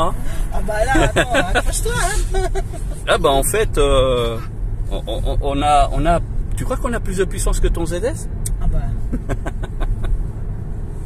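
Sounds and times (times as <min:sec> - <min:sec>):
road and tyre rumble: 0:00.0 - 0:11.0.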